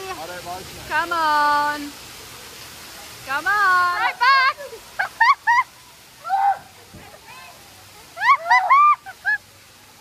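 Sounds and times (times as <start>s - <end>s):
faint hiss of water: 0.0s - 10.0s.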